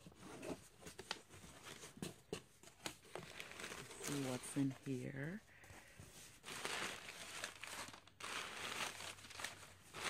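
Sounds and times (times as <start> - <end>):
packing paper crinkling: 2.8 - 5.3, 6.2 - 10.0.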